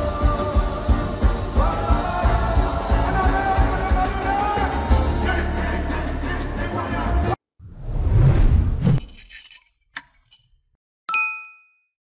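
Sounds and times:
bright bell ding: 0:11.1 - 0:11.9.

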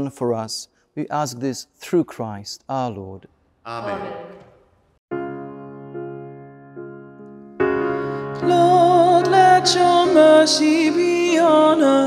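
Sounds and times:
keyboard chords: 0:03.7 - 0:12.0
person singing a psalm: 0:08.0 - 0:12.0.

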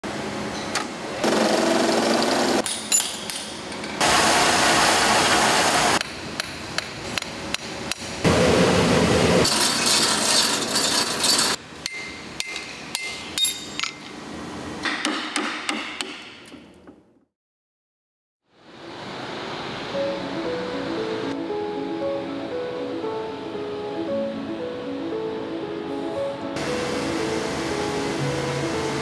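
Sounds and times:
metal turning and grinding machine: 0:03.5 - 0:14.2.

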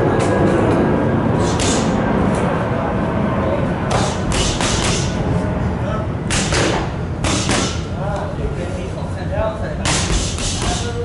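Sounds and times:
low rumble: 0:00.0 - 0:09.2
boxing punches on pads: 0:01.4 - 0:01.9, 0:03.9 - 0:05.2, 0:06.3 - 0:07.8, 0:09.9 - 0:10.9.

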